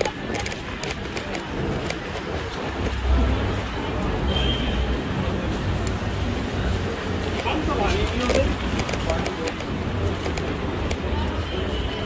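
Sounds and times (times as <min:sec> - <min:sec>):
scattered clicks: 0:00.0 - 0:03.0, 0:07.2 - 0:11.1
busy street ambience: 0:00.0 - 0:12.0.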